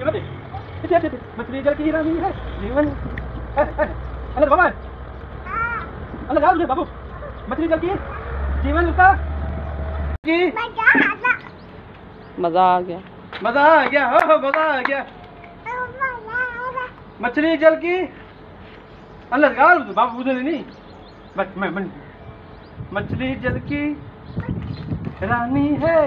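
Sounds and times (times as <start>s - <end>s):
crow cawing: 5.4s - 5.9s.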